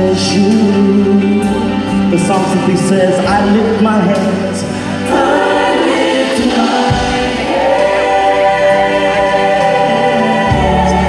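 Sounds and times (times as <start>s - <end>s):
gospel choir singing: 0.0s - 11.0s.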